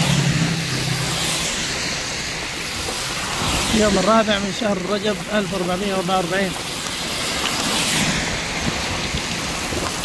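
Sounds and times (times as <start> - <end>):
tyres on wet road: 0.0 - 10.0
wind and rain: 0.0 - 10.0.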